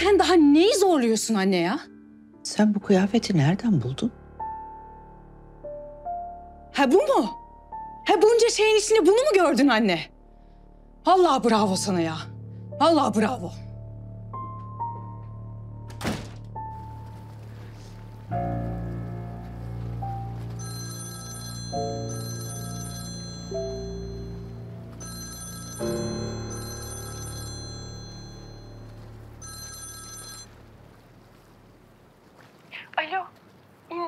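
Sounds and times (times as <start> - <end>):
soft background music: 0.0 - 33.3
mobile phone ringing: 20.4 - 30.7.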